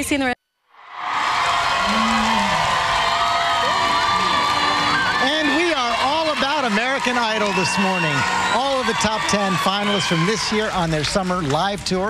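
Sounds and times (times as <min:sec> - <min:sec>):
crowd cheering and screaming: 0:00.8 - 0:11.6.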